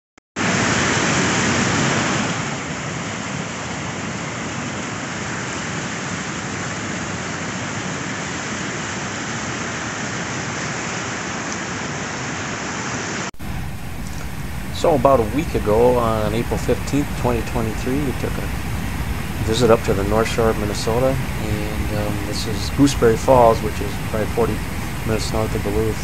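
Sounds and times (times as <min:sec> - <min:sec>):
waterfall rushing: 0:00.4 - 0:26.0.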